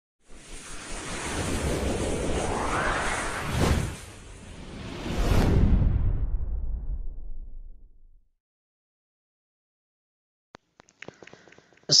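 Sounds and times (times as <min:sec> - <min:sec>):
whoosh sound effect: 0:00.3 - 0:07.0
low rumble: 0:01.2 - 0:08.3.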